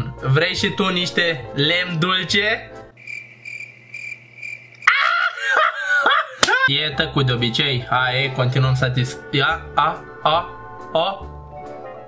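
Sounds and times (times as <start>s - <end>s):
cricket chirping: 3.0s - 5.4s.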